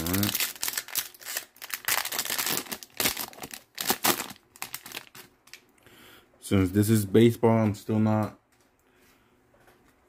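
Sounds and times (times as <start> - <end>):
plastic wrapper crinkling and tearing: 0.0 - 5.7.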